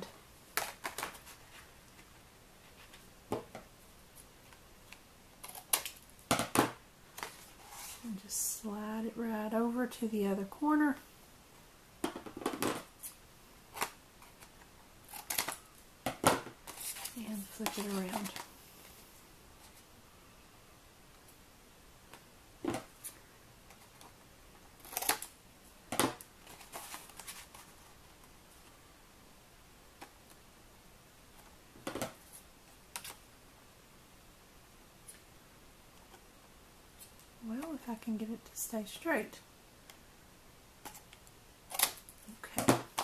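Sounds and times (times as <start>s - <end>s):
rustle and clatter of craft tools: 0.0s - 8.3s, 12.0s - 19.9s, 25.9s - 28.8s
card and metal die rustling: 16.7s - 18.5s.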